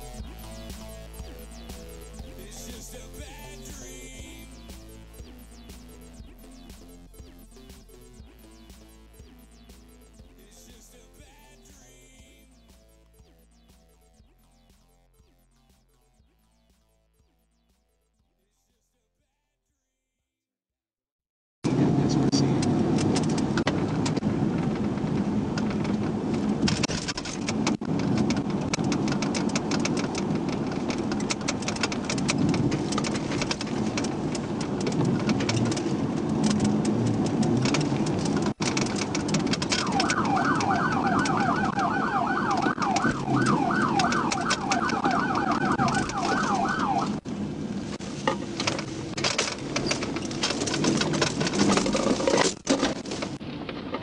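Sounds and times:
electronic siren yelping: 0:00.0 - 0:10.8, 0:39.6 - 0:47.3
road and wind rumble: 0:21.7 - 0:54.0.

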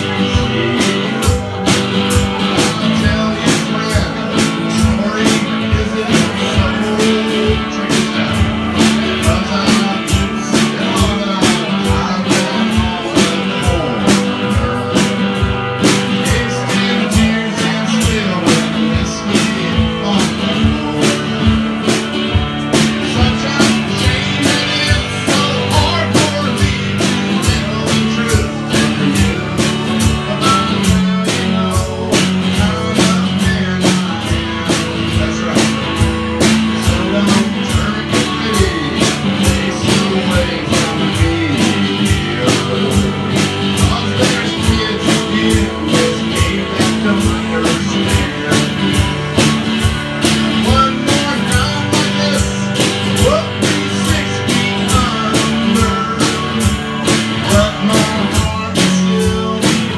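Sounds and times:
drum kit beat: 0:00.0 - 0:59.9
man singing: 0:00.0 - 0:59.9
strummed acoustic-electric guitar: 0:00.0 - 0:59.9.

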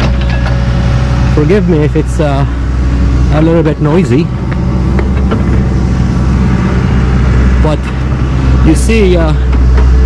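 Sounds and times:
machinery droning: 0:00.0 - 0:10.0.

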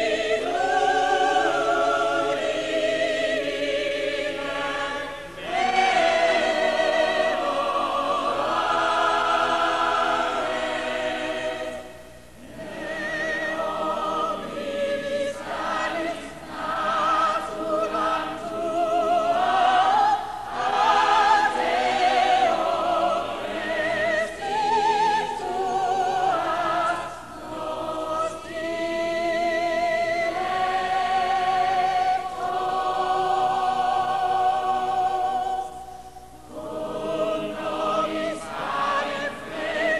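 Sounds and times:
classical choral singing: 0:00.0 - 0:39.9.

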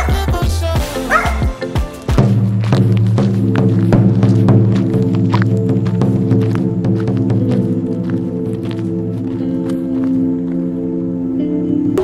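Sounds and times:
bass-heavy background music: 0:00.0 - 0:12.0
small dog barking: 0:01.1 - 0:01.5.

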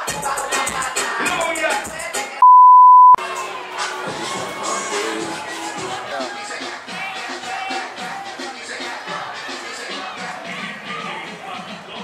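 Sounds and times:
pop club music: 0:00.0 - 0:03.2, 0:03.9 - 0:12.0
electronic censor bleep: 0:02.4 - 0:03.2.

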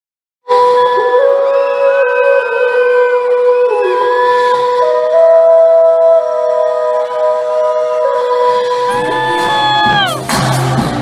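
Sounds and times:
person singing long notes: 0:00.5 - 0:10.6
fans screaming: 0:08.9 - 0:11.0.

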